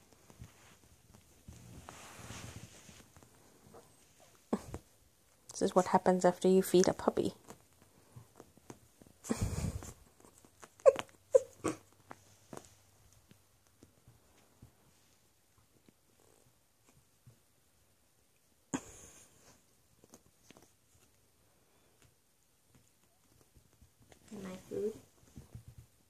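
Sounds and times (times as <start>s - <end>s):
paws scuffling on mattress: 0.0s - 4.8s.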